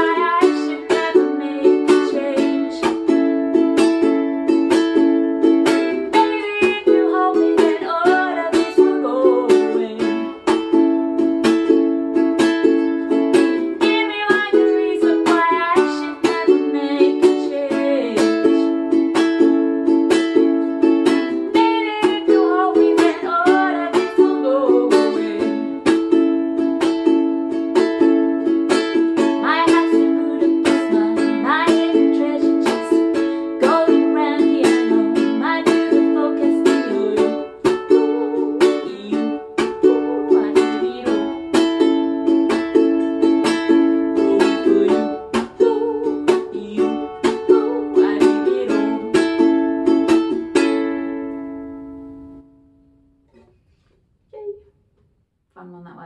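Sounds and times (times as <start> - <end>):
woman singing: 0.0 - 3.3, 5.9 - 10.6, 13.4 - 19.0, 21.0 - 26.1, 28.9 - 42.6, 43.4 - 50.0
ukulele strumming: 0.0 - 53.9.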